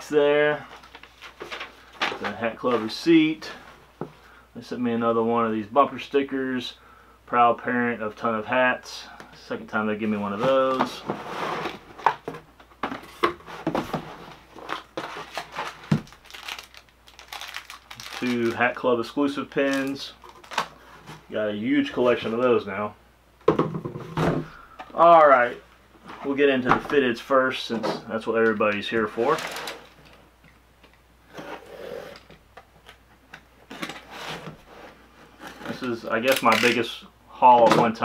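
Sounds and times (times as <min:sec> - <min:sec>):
plastic bags crinkling: 0:14.5 - 0:18.8, 0:19.6 - 0:20.8, 0:29.1 - 0:30.2.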